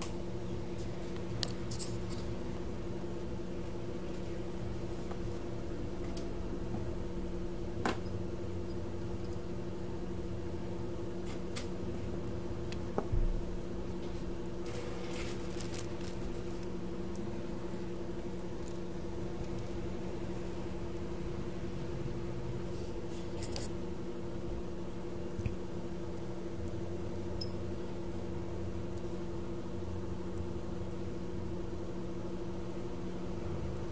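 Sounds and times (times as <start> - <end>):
electronics equipment hum: 0.0 - 33.9.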